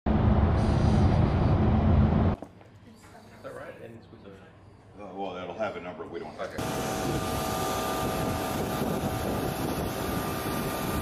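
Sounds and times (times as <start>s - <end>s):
car road noise rumble: 0.1s - 2.4s.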